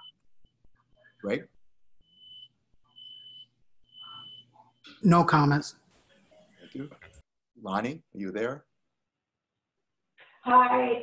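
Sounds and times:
faint electronic beeping: 0:00.0 - 0:07.2.

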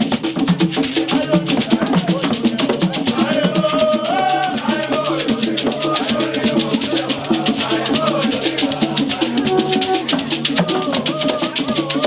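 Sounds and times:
drum beat: 0:00.0 - 0:12.0
voices singing: 0:00.0 - 0:12.0.

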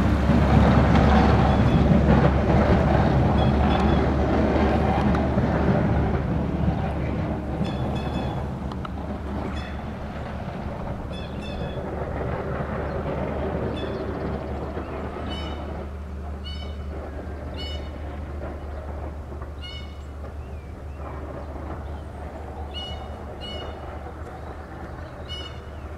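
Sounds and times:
truck engine and tyre rumble: 0:00.0 - 0:25.9.

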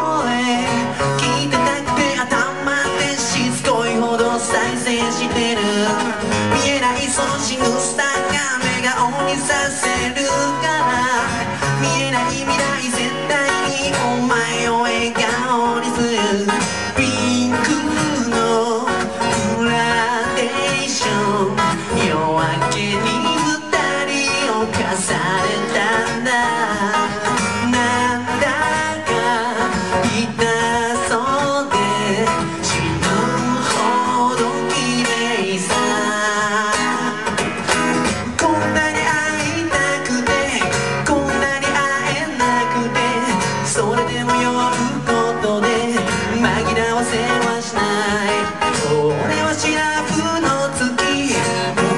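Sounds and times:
acoustic guitar picking: 0:00.0 - 0:51.9.

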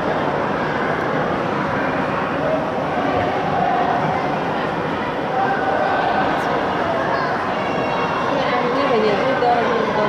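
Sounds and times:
ice rink crowd din: 0:00.0 - 0:10.0.

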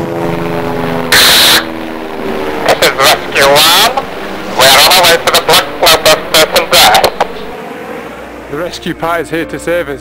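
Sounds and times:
steady background hiss: 0:00.3 - 0:10.0
man narrating: 0:02.6 - 0:07.5, 0:08.5 - 0:10.0.

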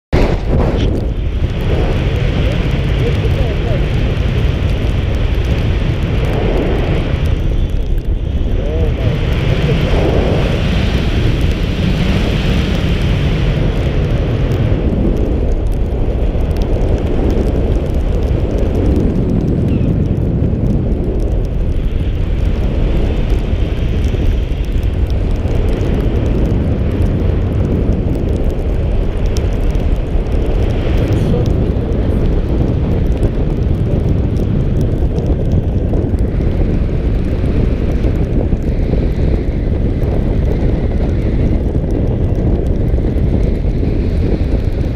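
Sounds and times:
wind buffeting microphone: 0:00.1 - 0:44.9.

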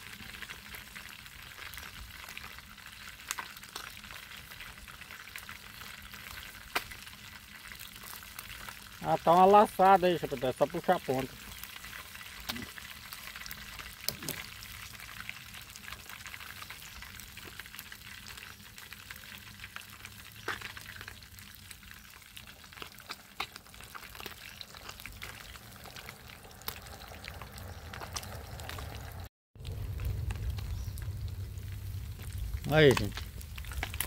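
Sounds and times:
food sizzling in oil: 0:00.0 - 0:34.0
low rumble: 0:25.4 - 0:34.0.

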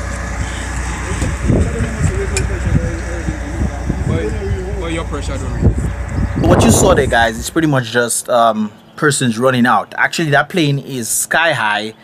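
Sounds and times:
low rumble: 0:00.0 - 0:07.9
people talking: 0:00.5 - 0:12.0.

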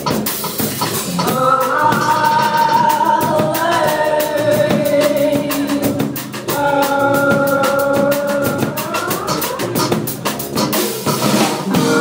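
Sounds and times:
drum kit steady beat: 0:00.0 - 0:12.0
dub band playing: 0:00.0 - 0:12.0.

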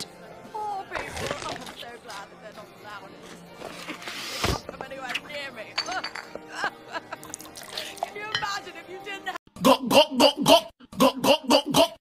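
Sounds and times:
music: 0:00.0 - 0:12.0
glass bottles clinking: 0:05.8 - 0:06.6.

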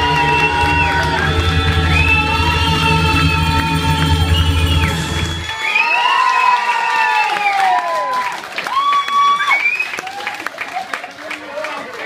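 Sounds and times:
heavy bass backing: 0:00.0 - 0:05.8
crowd cheering with whoops: 0:00.0 - 0:11.7.

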